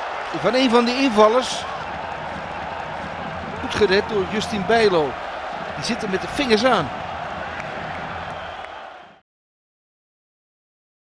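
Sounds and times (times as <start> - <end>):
stadium crowd hubbub: 0.0 - 9.2.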